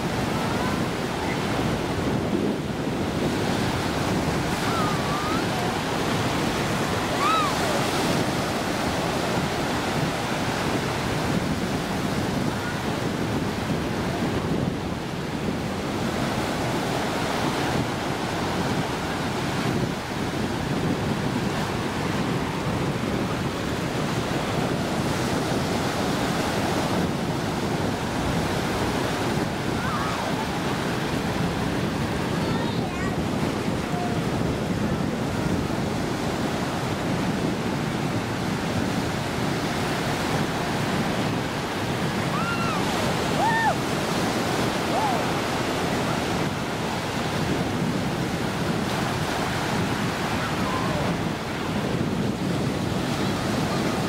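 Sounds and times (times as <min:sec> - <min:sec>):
ocean surf breaking: 0:00.0 - 0:54.0.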